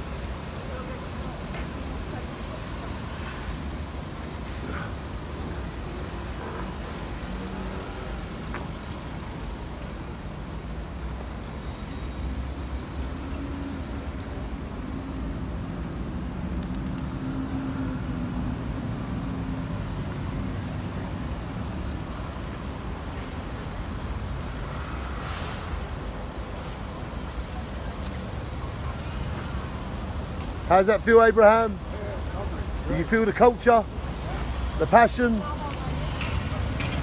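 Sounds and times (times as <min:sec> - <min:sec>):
city road traffic noise: 0:00.0 - 0:37.0.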